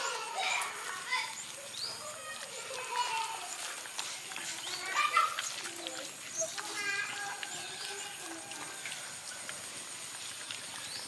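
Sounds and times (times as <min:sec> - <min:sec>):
dogs eating from metal tray: 0:00.0 - 0:11.0.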